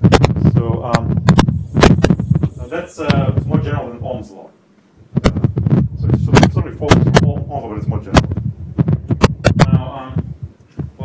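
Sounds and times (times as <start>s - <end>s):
low hum: 0.0s - 11.0s
man talking: 0.4s - 1.2s, 2.4s - 4.6s, 5.2s - 8.3s, 9.6s - 10.3s
sharp knocks: 5.2s - 11.0s.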